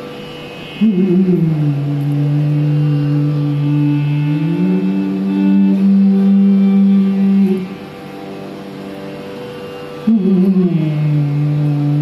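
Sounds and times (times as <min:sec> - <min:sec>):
held melodic vocal note: 0:00.7 - 0:08.0.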